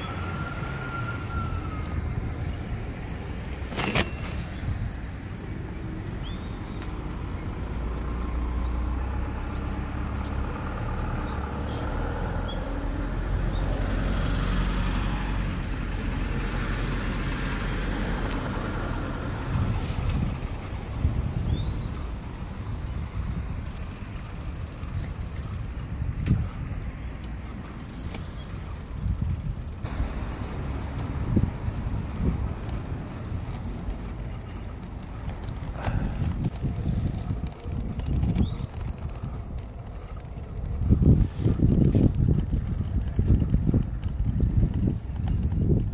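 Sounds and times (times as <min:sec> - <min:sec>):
bicycle rattling over bumps: 0:00.0 - 0:45.9
motor vehicle passing: 0:00.0 - 0:45.9
street noise: 0:00.0 - 0:45.9.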